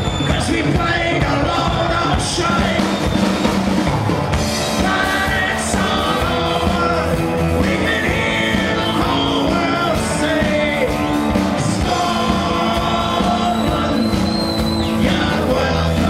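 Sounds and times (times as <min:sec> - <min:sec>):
drums: 0:00.0 - 0:16.0
electric guitar: 0:00.0 - 0:16.0
man singing into microphone: 0:00.2 - 0:03.1, 0:04.8 - 0:16.0.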